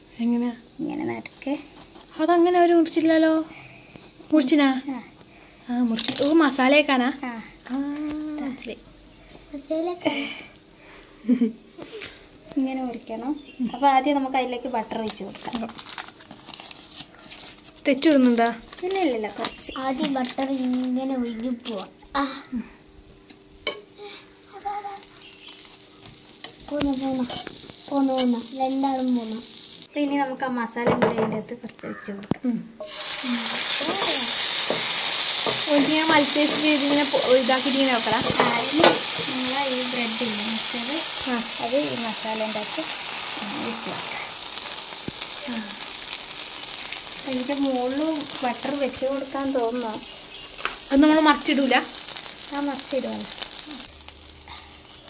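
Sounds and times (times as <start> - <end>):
butter sizzling on a griddle: 11.3 - 21.9, 22.6 - 29.9, 32.8 - 55.0.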